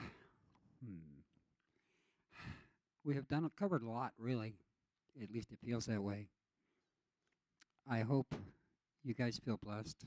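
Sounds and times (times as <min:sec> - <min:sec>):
breathy sigh into microphone: 0:00.0 - 0:01.0, 0:01.9 - 0:02.8
man humming hmm: 0:00.8 - 0:01.2.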